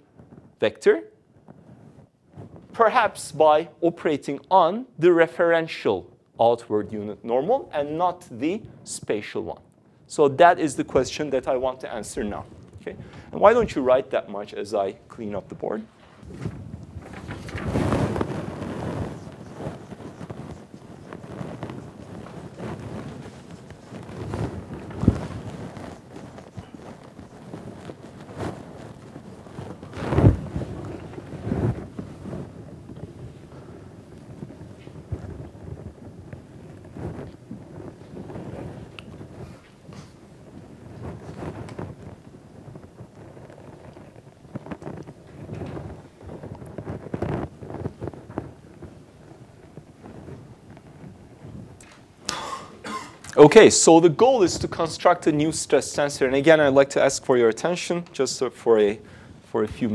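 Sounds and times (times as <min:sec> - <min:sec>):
handling noise rustling and thumps: 0:01.4 - 0:02.8, 0:15.9 - 0:53.2.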